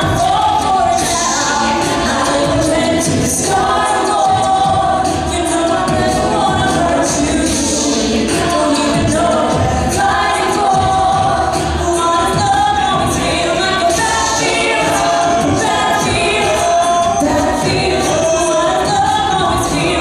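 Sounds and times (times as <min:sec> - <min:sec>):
choir of backing voices: 0:00.0 - 0:20.0
female lead singing: 0:00.0 - 0:20.0.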